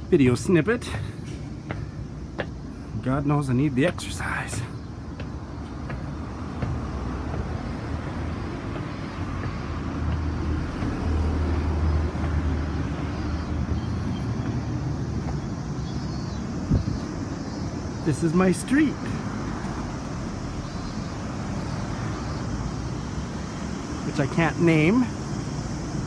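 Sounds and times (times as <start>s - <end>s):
street traffic passing: 0.0s - 26.0s.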